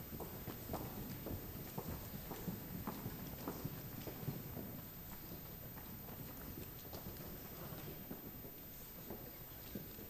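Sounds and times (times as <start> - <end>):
footsteps on wooden stage: 0.0 - 10.0
low hall hum: 0.0 - 10.0.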